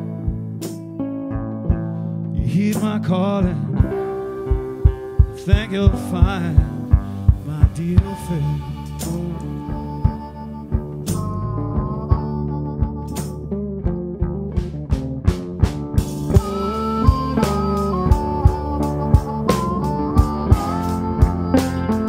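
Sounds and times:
bass guitar: 0.0 - 22.0
drum kit beat: 0.0 - 22.0
electric guitar: 0.0 - 22.0
harmonica: 3.2 - 14.1, 15.8 - 22.0.

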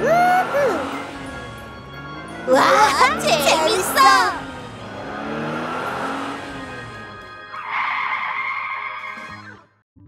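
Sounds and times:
cartoon car sound effect: 0.0 - 1.4, 2.4 - 9.8
background music: 0.0 - 8.1.

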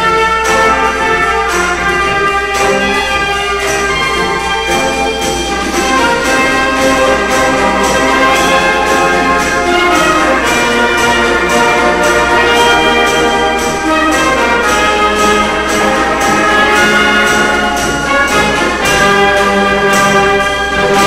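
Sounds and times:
military brass band playing: 0.0 - 21.0
steady beat: 0.0 - 21.0.

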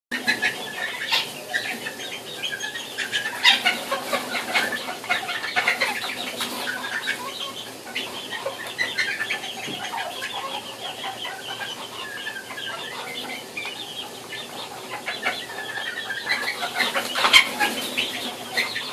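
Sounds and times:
chickens clucking and chirping: 0.1 - 18.9.

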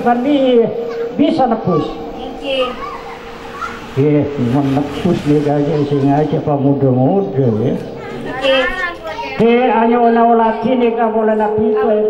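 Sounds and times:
crowd chatter: 0.0 - 12.0
children's voices: 0.3 - 9.7.

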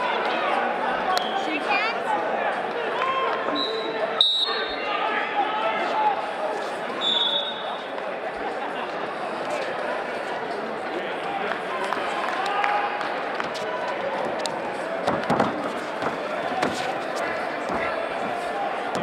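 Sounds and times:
many voices talking: 0.0 - 19.0.

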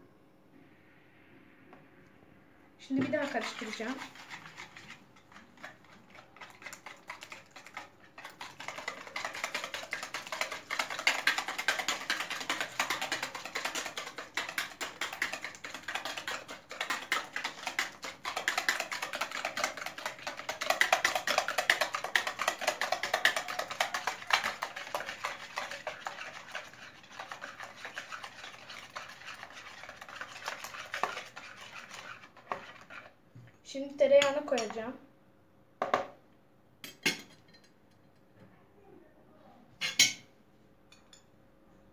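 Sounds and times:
whisk beating in plastic bowl: 2.9 - 33.2.

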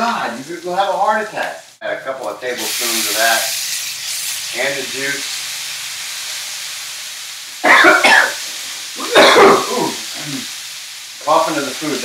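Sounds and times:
pan sizzling: 0.0 - 12.0
man coughing: 7.6 - 8.4, 9.0 - 10.0.

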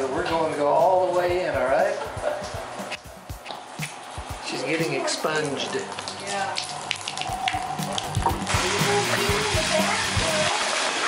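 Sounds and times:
faucet water splashing on hand: 3.5 - 11.0.

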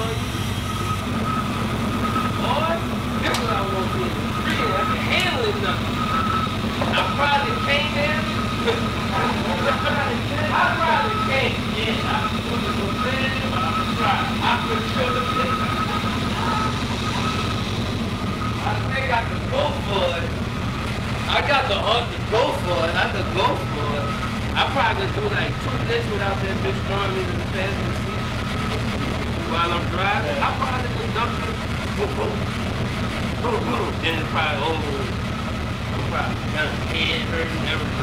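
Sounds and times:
indistinct voices talking: 0.0 - 38.0
vehicle engine idling: 0.0 - 38.0.

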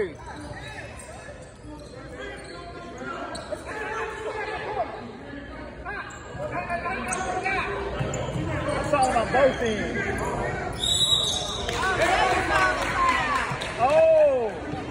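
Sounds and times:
voices of players and spectators: 0.0 - 14.9.

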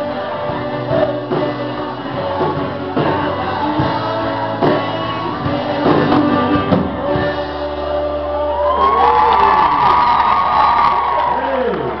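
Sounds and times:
live rock band playing: 0.0 - 11.3
audience cheering and whooping: 8.2 - 12.0.

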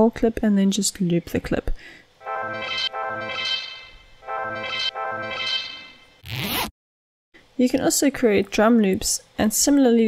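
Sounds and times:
held instrument notes: 2.2 - 6.2.

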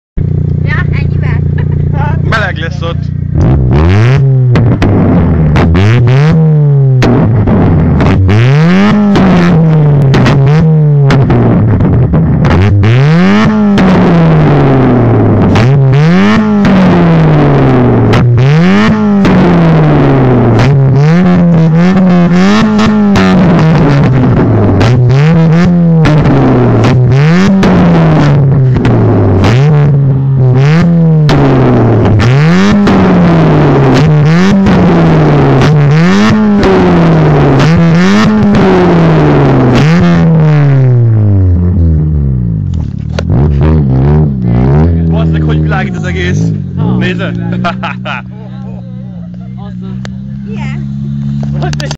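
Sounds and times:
car engine revving: 0.2 - 51.9
exhaust pops and bangs: 2.4 - 41.7, 42.6 - 48.0.

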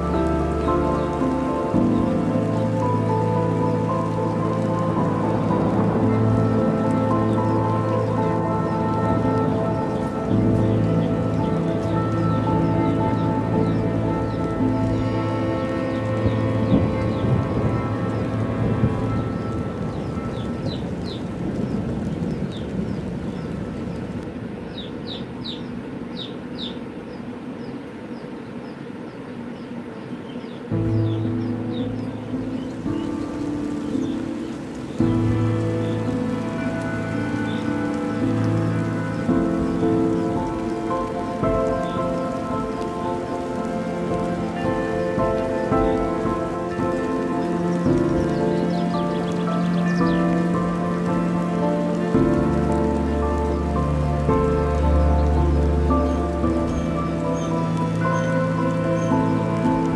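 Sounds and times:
layered synth chords: 0.0 - 59.9
rain-like hiss: 0.0 - 59.9.

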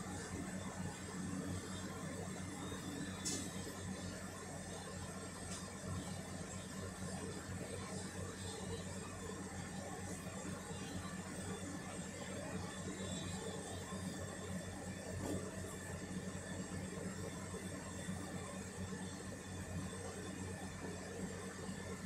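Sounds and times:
machine humming and whirring: 0.0 - 22.0.

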